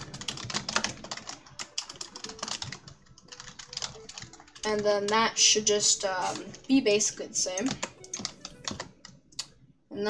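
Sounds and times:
typing on a keyboard: 0:00.0 - 0:05.2, 0:07.6 - 0:09.2.

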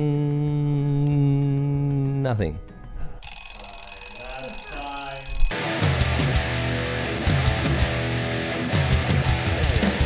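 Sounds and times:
alarm clock bell ringing: 0:03.2 - 0:05.6.

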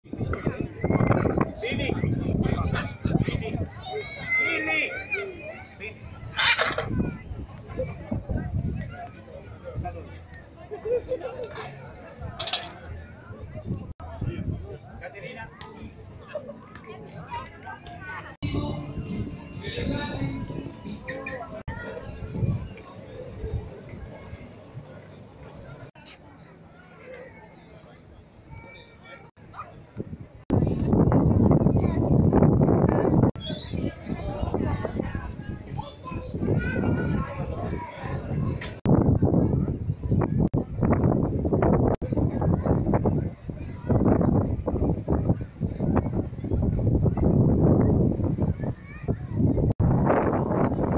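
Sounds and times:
faint voices: 0:00.0 - 0:50.9
people talking: 0:00.1 - 0:50.9.

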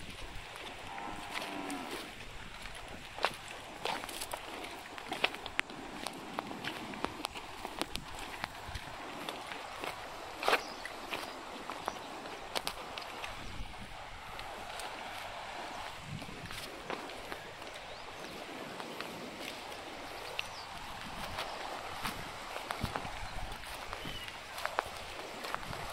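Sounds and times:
hooves and footsteps on stones: 0:00.0 - 0:25.9
outdoor ambience: 0:00.0 - 0:25.9
animal cropping grass: 0:00.7 - 0:03.1.

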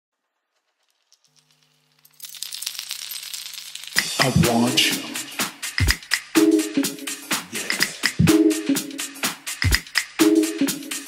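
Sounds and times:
fast rattling percussion: 0:02.1 - 0:06.4, 0:07.1 - 0:08.3, 0:09.3 - 0:11.0.

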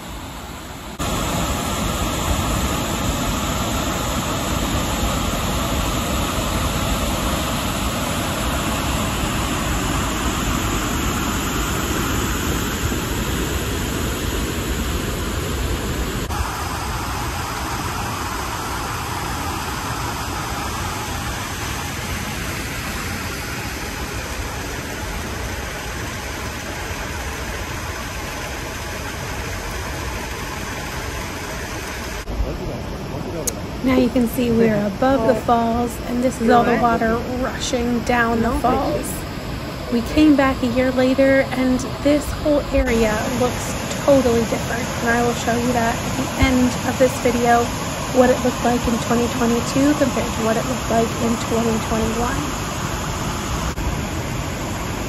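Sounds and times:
waterfall rushing: 0:00.0 - 0:55.0.

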